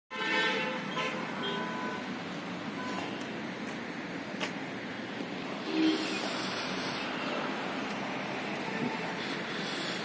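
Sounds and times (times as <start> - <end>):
vehicle horns honking: 0.1 - 2.1, 5.6 - 6.3
traffic background noise: 0.1 - 10.0.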